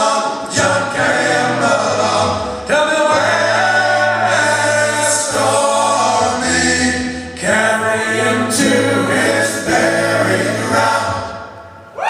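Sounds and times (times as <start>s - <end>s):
men singing in harmony: 0.0s - 11.6s.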